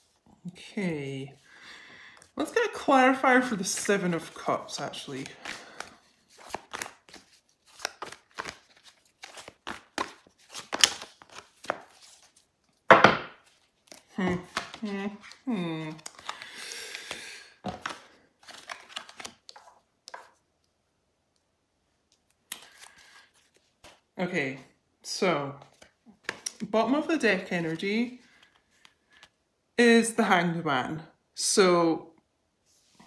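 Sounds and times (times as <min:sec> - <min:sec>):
cards being shuffled: 0:03.7 - 0:12.8, 0:13.4 - 0:20.4, 0:22.2 - 0:24.1, 0:25.6 - 0:29.4.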